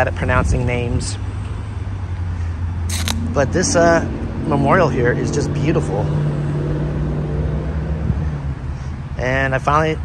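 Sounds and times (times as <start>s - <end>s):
brief hiss: 2.9s - 3.2s.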